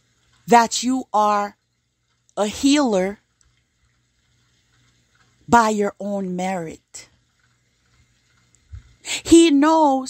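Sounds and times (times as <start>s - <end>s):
faint low hum: 0.0s - 10.0s
person speaking: 0.5s - 1.5s, 2.4s - 3.2s, 5.5s - 7.0s, 9.1s - 10.0s.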